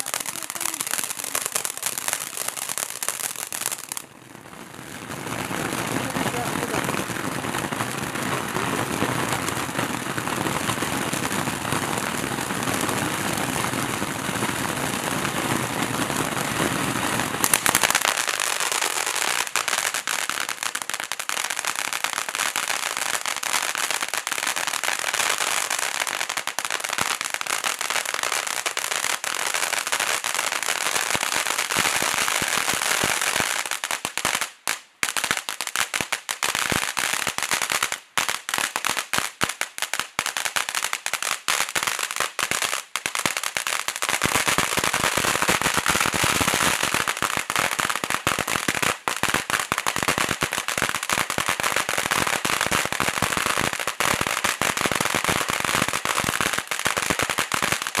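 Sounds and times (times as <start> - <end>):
firework fountain crackling: 0.0 - 58.0.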